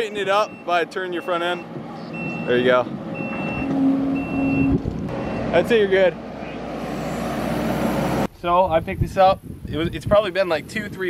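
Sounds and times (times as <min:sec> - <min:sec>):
backup alarm beeping: 0:00.0 - 0:05.6
diesel engine running: 0:00.1 - 0:08.3.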